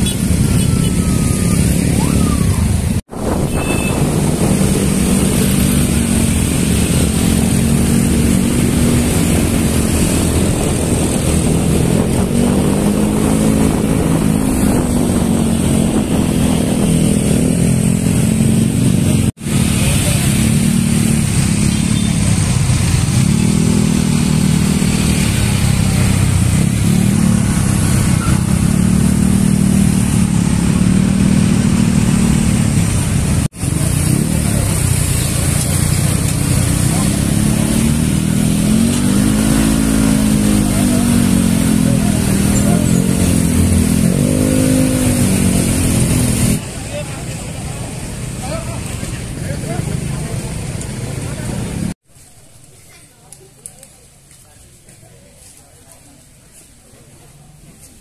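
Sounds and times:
many scooter engines droning: 0.0s - 52.0s.

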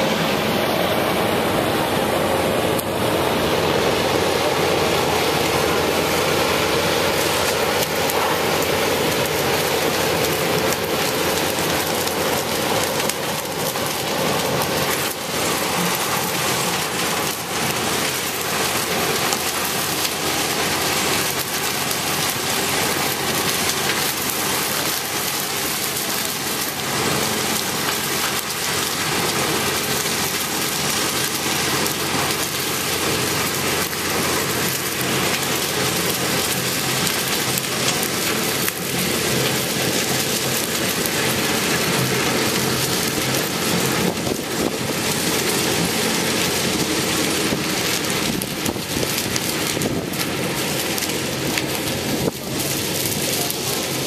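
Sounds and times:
harvester engine and chopping machinery: 0.0s - 54.0s
cane pieces pouring into trailer: 2.8s - 54.0s.

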